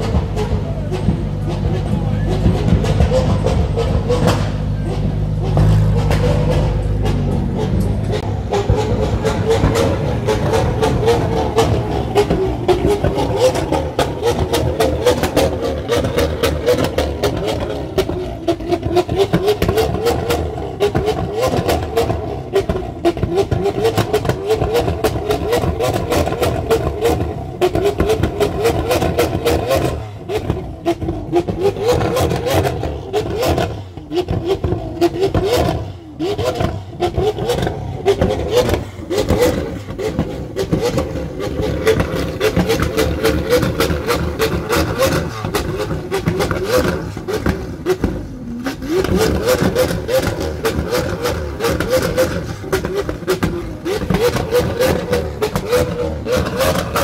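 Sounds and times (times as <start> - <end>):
sports car engine exhaust: 0.0 - 57.0.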